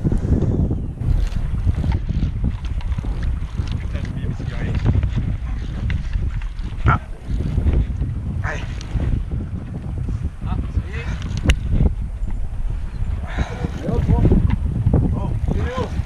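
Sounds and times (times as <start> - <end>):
low rumble of boat: 0.0 - 16.0
wind buffeting microphone: 0.0 - 16.0
voices: 15.1 - 16.0.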